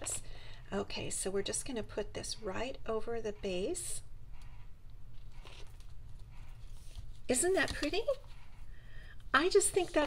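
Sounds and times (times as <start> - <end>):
low steady hum: 0.0 - 10.0
paper rustling and tapping: 5.3 - 8.4, 9.4 - 10.0.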